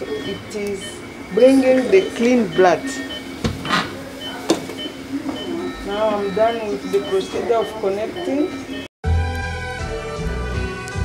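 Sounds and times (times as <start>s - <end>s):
machine humming: 0.0s - 8.9s.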